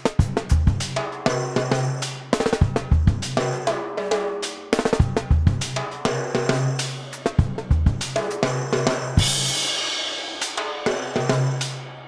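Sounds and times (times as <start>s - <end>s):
funk drum kit groove: 0.0s - 12.0s.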